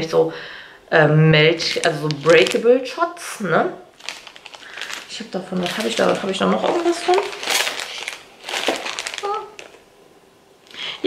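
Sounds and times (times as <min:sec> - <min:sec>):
plastic packaging crinkling: 0:01.5 - 0:09.9.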